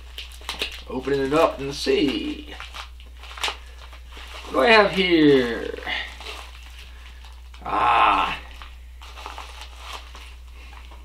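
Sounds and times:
plastic packets crinkling: 0.0 - 11.0.

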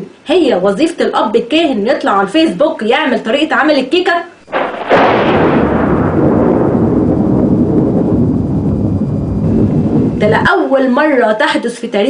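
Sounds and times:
deep rumble: 4.5 - 10.6.

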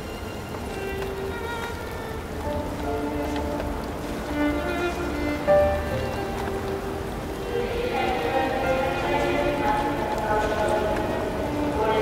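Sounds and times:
gentle instrumental music: 0.0 - 12.0
steady rain: 0.0 - 12.0.

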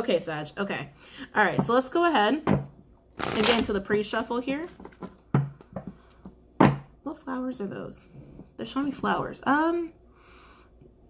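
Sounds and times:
cards being shuffled: 3.2 - 3.8.

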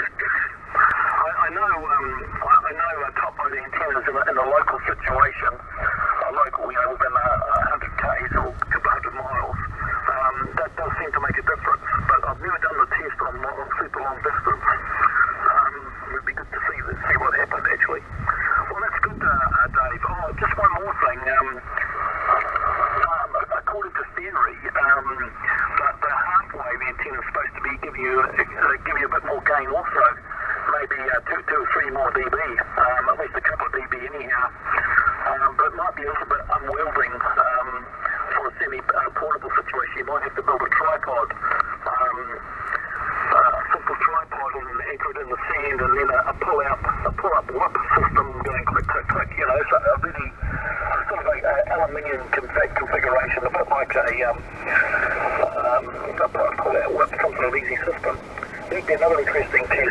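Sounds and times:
man talking over radio: 0.0 - 59.9.

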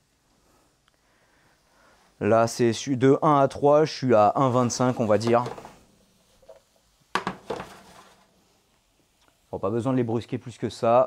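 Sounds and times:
faint knock: 7.2 - 7.9
metal clattering on a pan: 7.2 - 8.0.

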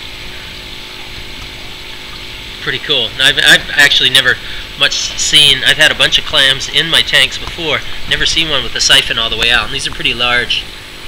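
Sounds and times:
mechanical hum with whirr: 0.0 - 11.0.

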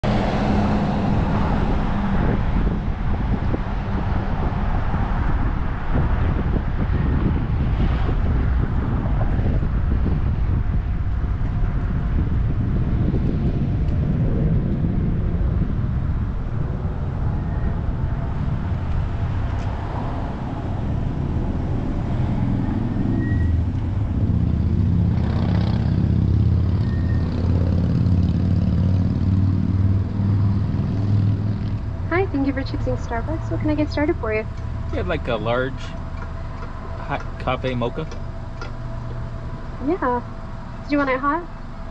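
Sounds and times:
car engine: 0.0 - 41.9
road noise: 0.0 - 41.9.

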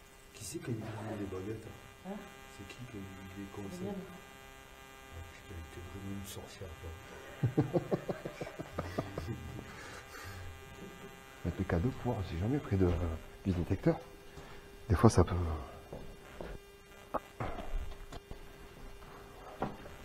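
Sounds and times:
steady electrical buzz: 0.0 - 20.0.

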